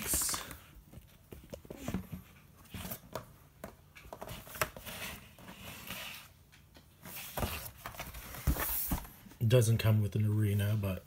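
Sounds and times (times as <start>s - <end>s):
cardboard rustling: 0.0s - 9.4s.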